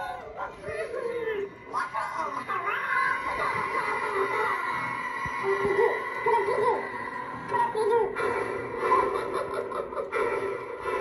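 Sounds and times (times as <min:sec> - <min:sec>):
cartoonish clown voice from speaker: 0:00.0 - 0:04.7, 0:05.4 - 0:10.2
music: 0:00.0 - 0:11.0.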